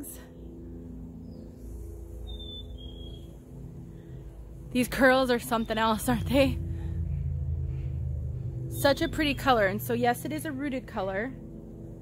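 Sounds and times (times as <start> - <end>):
low tone hum: 0.0 - 12.0
low rumble: 0.3 - 12.0.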